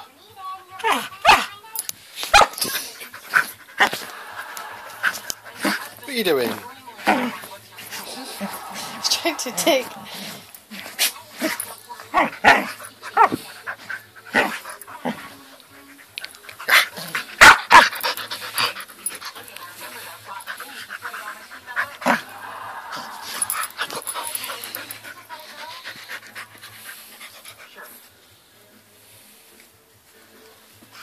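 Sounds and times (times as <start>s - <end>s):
puppy panting: 2.4s - 28.2s.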